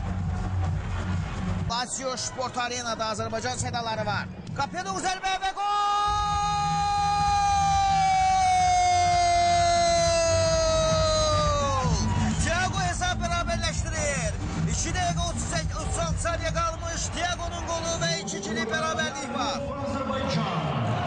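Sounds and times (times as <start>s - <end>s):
arena crowd: 0.0s - 21.0s
excited speech: 1.7s - 20.8s.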